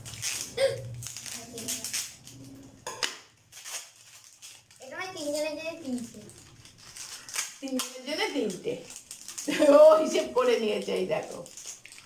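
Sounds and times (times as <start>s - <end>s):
wrappers rustling: 0.0s - 12.0s.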